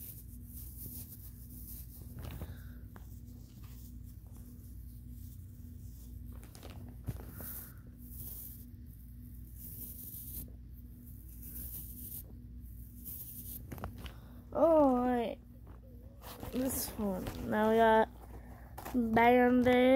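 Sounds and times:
faint low hum: 0.0s - 19.9s
scratchy paper rustling: 0.0s - 19.9s.

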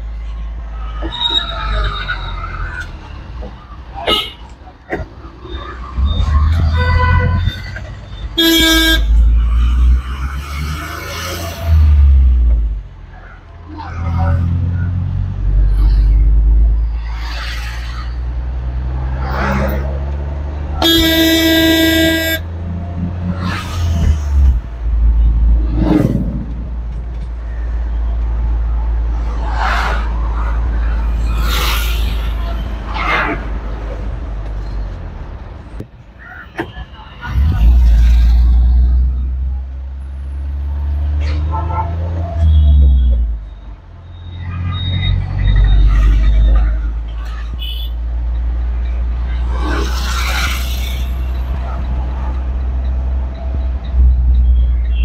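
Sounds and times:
vehicle horn: 8.4s - 9.3s, 20.8s - 22.5s.

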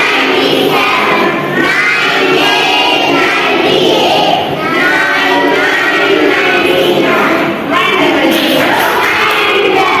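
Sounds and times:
children chanting in unison: 0.0s - 10.0s.

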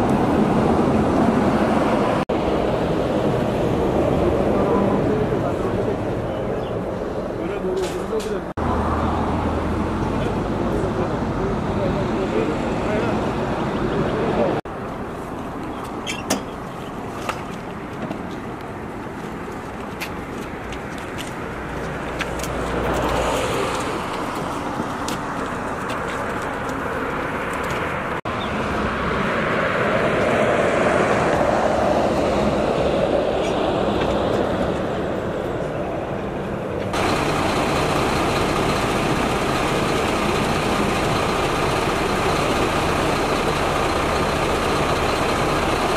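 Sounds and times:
road traffic: 0.0s - 45.9s.

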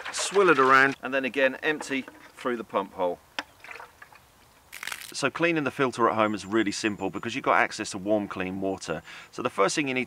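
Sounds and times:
water pouring onto grass: 0.0s - 1.0s, 3.6s - 5.2s.

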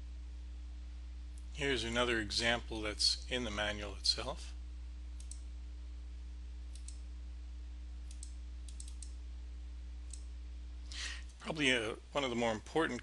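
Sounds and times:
steady low hum: 0.0s - 13.0s
computer mouse clicks: 5.2s - 5.4s, 6.7s - 7.0s, 8.1s - 9.2s, 10.1s - 10.3s.

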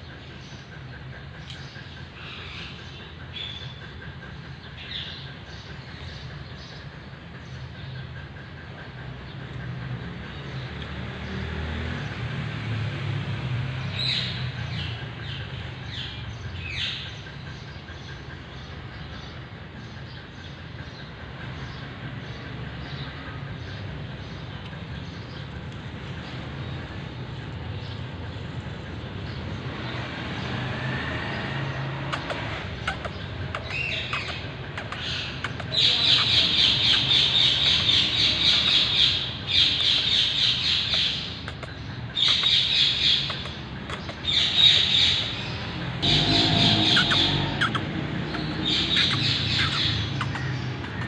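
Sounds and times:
birds chattering: 0.0s - 11.4s, 14.0s - 51.0s.

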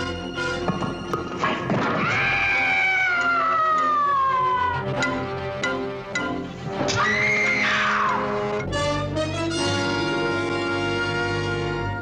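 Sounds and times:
high-pitched wailing scream: 2.0s - 5.0s, 6.9s - 8.4s.

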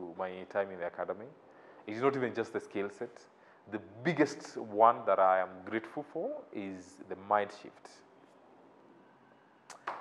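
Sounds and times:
short breath: 1.4s - 1.9s, 3.3s - 3.7s
mouth click: 9.7s - 9.9s.

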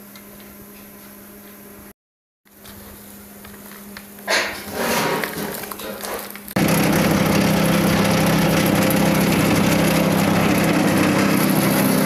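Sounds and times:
waste shredder humming: 4.7s - 12.0s.

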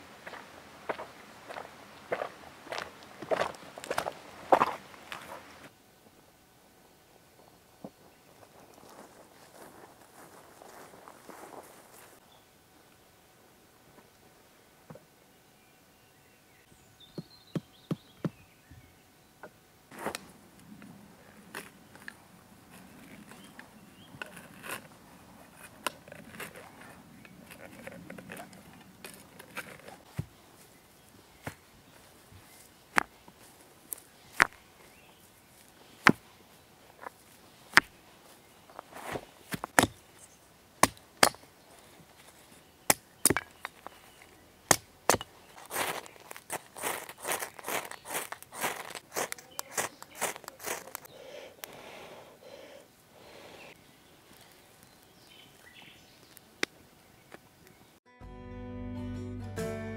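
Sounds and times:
hatchet striking wood: 39.6s - 40.0s, 40.8s - 41.5s, 42.9s - 43.7s, 44.7s - 45.3s
wood cracking and rustling: 40.8s - 51.1s.

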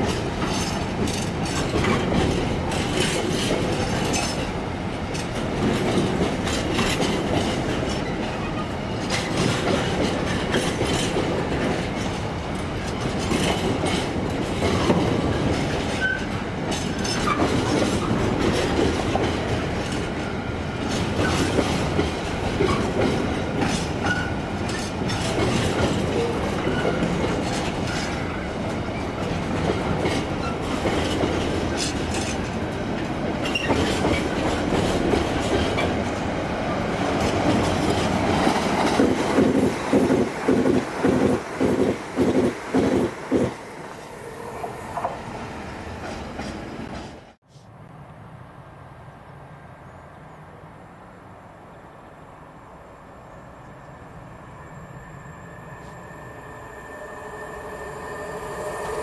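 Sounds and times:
steel wheels rolling on rails: 0.0s - 47.3s.

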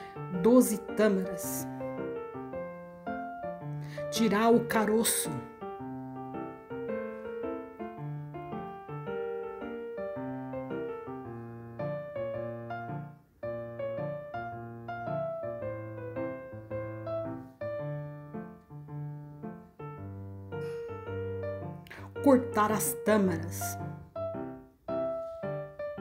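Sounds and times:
piano music: 0.0s - 26.0s.

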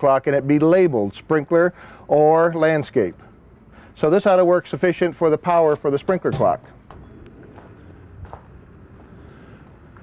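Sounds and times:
low outdoor rumble: 0.0s - 10.0s
footsteps on dirt: 6.9s - 10.0s.

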